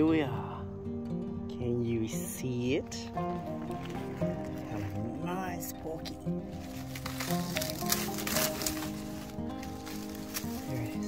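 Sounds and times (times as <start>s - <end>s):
background music with bass line: 0.0s - 11.0s
dry leaves rustling: 3.1s - 11.0s.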